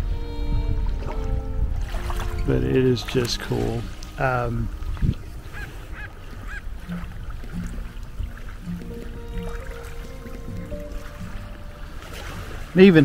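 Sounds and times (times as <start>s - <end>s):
seabirds calling: 0.0s - 13.0s.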